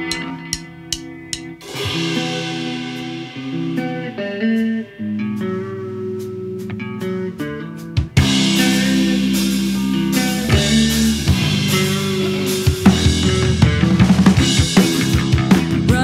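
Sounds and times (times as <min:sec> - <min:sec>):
bass guitar: 0:00.0 - 0:16.0
electric guitar chords: 0:00.0 - 0:16.0.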